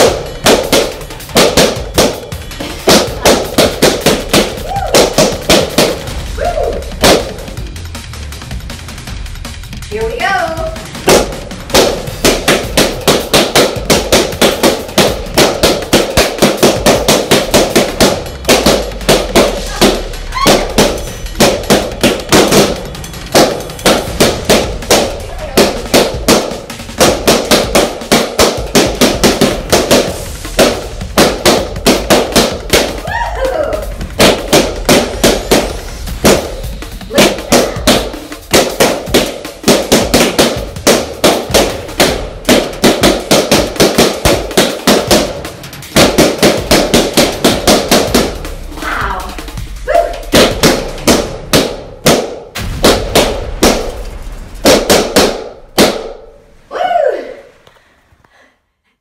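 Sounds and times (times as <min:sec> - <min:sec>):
balloons bursting: 0:00.0 - 0:58.3.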